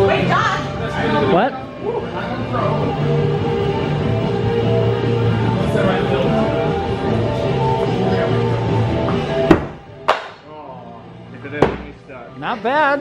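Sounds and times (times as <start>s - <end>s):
music: 0.0s - 13.0s
axes striking wooden boards: 11.6s - 11.9s.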